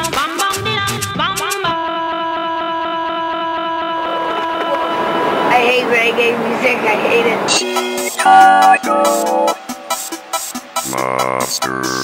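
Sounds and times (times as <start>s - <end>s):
held synthesizer chord: 7.6s - 10.9s.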